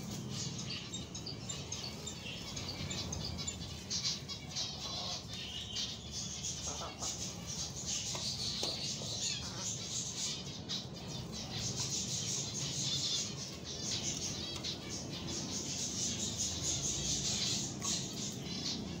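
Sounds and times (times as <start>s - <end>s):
finches chirping: 0.0s - 19.0s.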